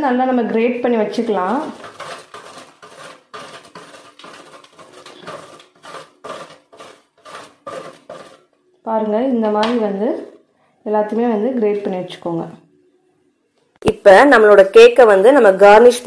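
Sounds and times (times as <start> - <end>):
woman's voice: 0.0 - 1.8, 8.9 - 12.6, 13.8 - 16.0
chocolate rasping on grater: 1.3 - 8.6.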